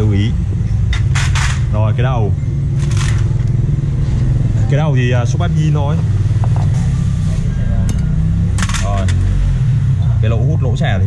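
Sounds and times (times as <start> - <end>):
steady low hum: 5.9 - 10.0
metal engine parts clinking: 7.8 - 9.2.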